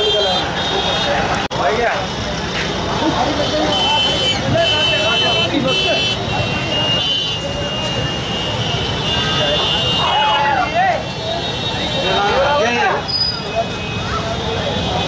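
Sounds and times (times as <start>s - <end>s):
crowd talking: 0.0s - 15.0s
traffic noise: 0.0s - 15.0s.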